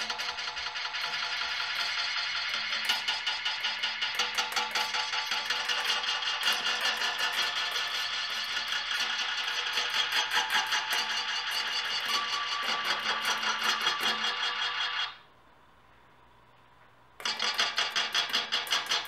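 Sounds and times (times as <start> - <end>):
sustained ringing tones: 0.0 - 15.2.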